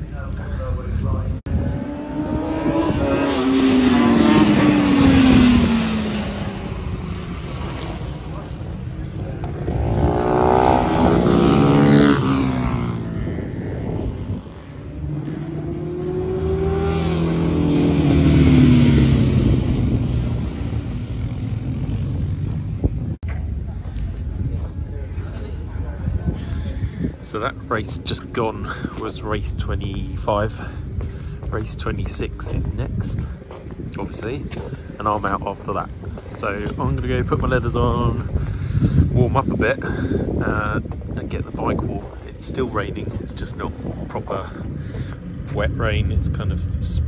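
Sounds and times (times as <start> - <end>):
racing motorcycles passing at speed: 1.3 - 23.2.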